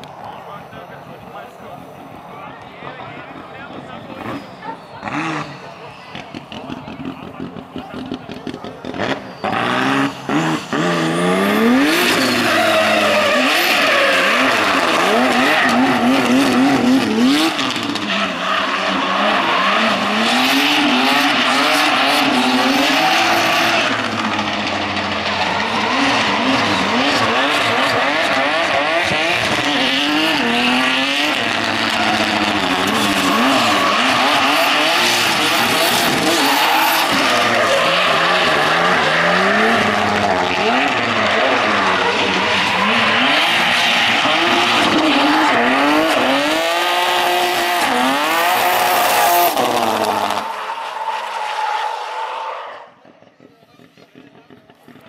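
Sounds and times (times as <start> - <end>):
car engine revving hard: 4.0 - 50.8
tyres screeching: 8.9 - 52.9.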